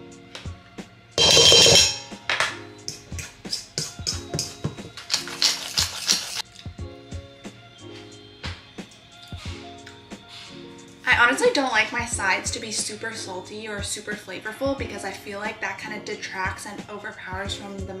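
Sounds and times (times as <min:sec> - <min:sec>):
background music with beat: 0:00.0 - 0:13.0
pepper grinder rasping: 0:05.0 - 0:06.5.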